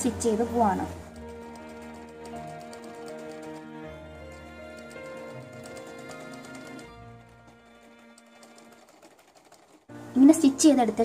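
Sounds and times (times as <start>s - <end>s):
woman speaking: 0.0s - 1.0s, 10.2s - 11.0s
background music: 0.0s - 11.0s
sewing machine stitching: 0.9s - 9.9s.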